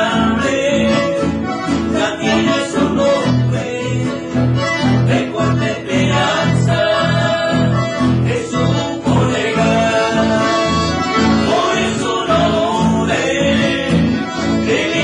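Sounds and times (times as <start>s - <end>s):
accordion: 0.0s - 15.0s
acoustic guitars: 0.0s - 15.0s.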